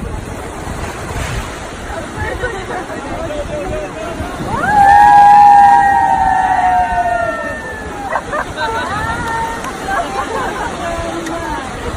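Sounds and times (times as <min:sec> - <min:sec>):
people cheering woooo: 0:04.4 - 0:10.0.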